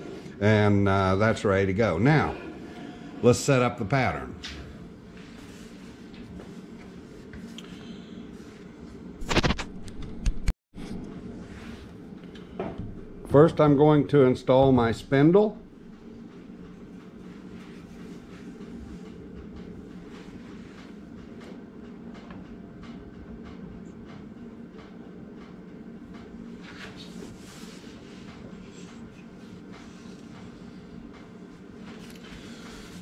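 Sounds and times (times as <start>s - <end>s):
low machine hum: 0.0s - 33.0s.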